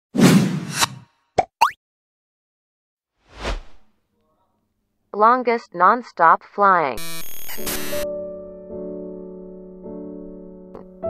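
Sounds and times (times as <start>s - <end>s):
short whoosh: 3.3s - 3.9s.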